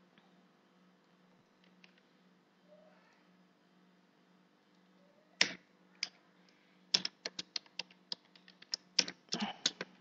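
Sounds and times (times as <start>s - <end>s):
computer keyboard typing: 6.9s - 10.0s.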